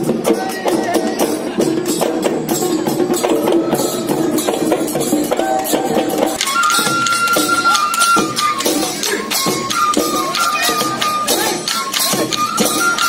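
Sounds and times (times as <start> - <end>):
drums beating steady rhythm: 0.0 - 13.0.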